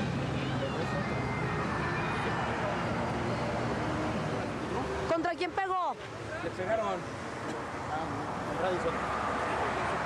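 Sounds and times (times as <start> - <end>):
faint voices: 0.0 - 7.2
traffic passing on busy road: 0.0 - 10.0.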